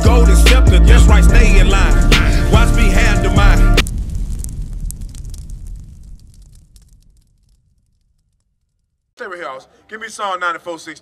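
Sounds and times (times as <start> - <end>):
fire crackling: 0.0 - 9.5
deep rumbling explosion boom: 0.1 - 9.0.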